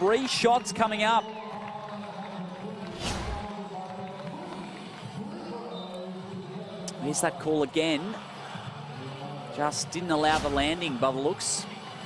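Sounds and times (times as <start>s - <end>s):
swoosh sound effect: 2.9s - 3.5s.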